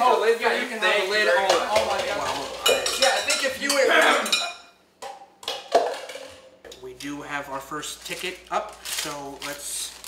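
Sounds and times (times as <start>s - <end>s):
metal pot and lid clanking: 1.8s - 4.7s.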